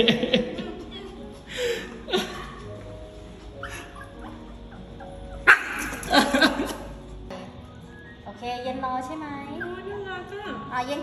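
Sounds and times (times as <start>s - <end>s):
small dog yapping: 5.5s - 6.1s.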